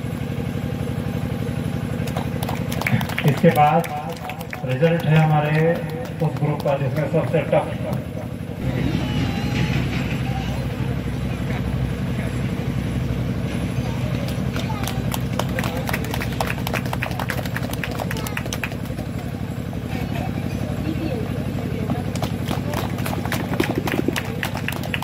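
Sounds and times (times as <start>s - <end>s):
steady low hum: 0.0s - 25.0s
crowd hand clapping: 2.0s - 8.3s, 14.0s - 19.7s, 22.0s - 25.0s.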